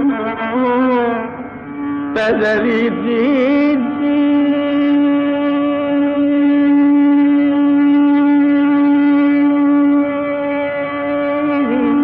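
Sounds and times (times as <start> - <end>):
long held note rich in overtones: 0.0 - 12.0.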